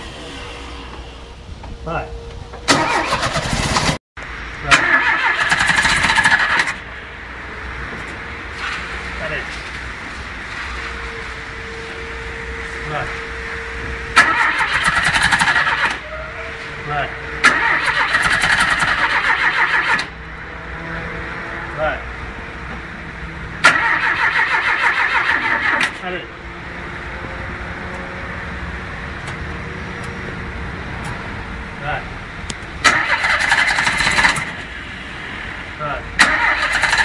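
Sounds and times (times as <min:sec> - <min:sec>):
starter motor cranking engine: 0:02.7 - 0:04.0, 0:04.7 - 0:06.8, 0:17.4 - 0:20.1, 0:32.8 - 0:34.5, 0:36.2 - 0:37.0.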